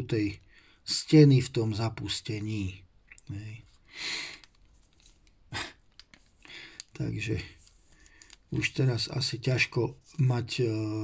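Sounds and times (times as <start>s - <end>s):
faint breathing: 0.4s - 0.9s, 3.7s - 4.6s, 6.4s - 8.5s.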